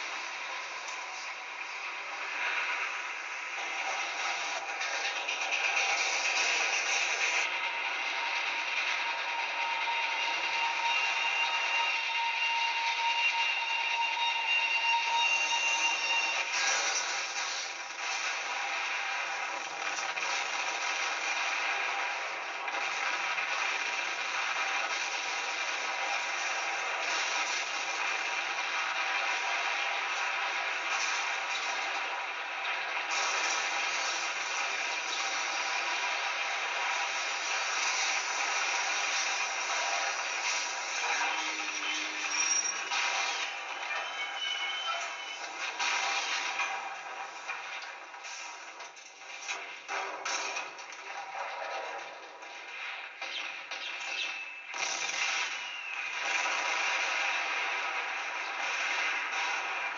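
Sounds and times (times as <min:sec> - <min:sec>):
train crash: 0:00.0 - 0:59.9.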